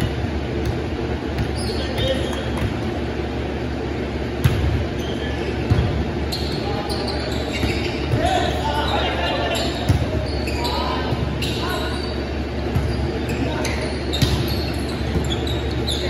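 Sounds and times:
players calling out: 4.9 - 16.0.

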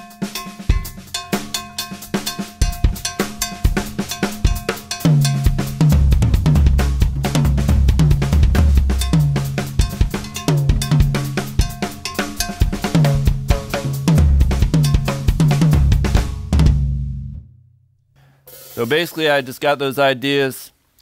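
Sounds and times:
sharp clave strikes: 0.0 - 16.5
drum kit groove: 0.0 - 17.4, 18.5 - 19.3
tom strikes: 0.0 - 17.7
bass drum: 0.4 - 17.6.

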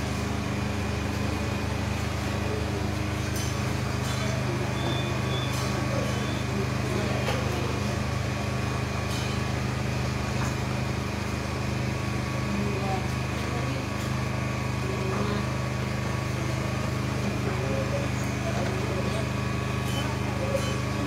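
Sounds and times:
low mechanical drone: 0.0 - 21.0
faint voices: 1.2 - 9.0, 12.2 - 21.0.

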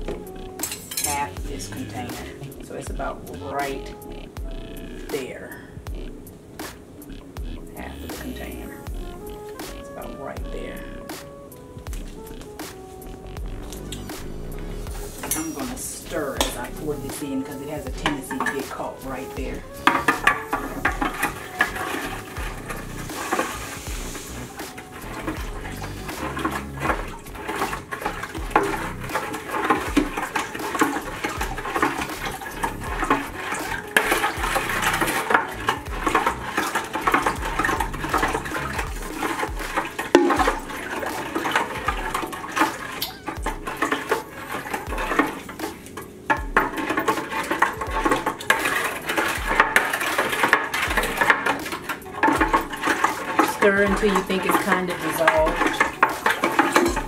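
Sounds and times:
spoon stirring liquid clinking: 0.0 - 2.7, 14.8 - 57.0.

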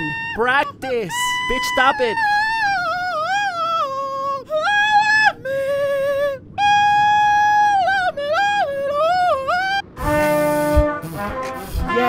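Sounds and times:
woman yodel-like singing: 0.0 - 9.8.

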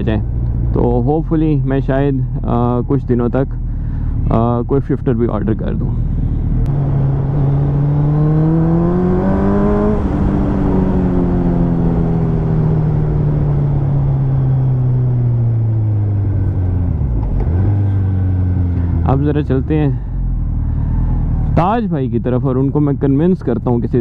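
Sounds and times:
motorcycle engine revving: 6.0 - 22.0.

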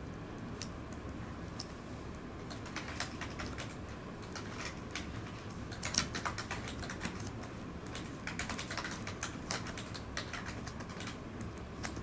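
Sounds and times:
typing on computer keyboard: 2.4 - 12.0.

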